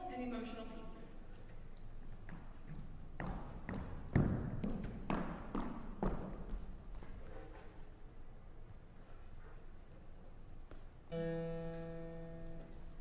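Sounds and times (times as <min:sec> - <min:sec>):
footsteps on wooden stage: 0:01.2 - 0:07.7.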